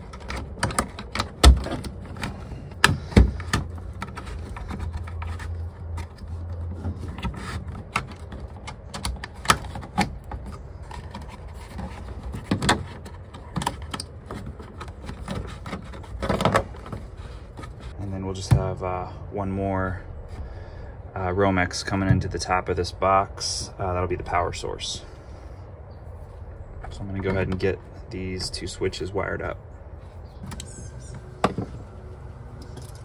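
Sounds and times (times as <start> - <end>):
cable clicking and rustling in plastic box: 0.0 - 17.9.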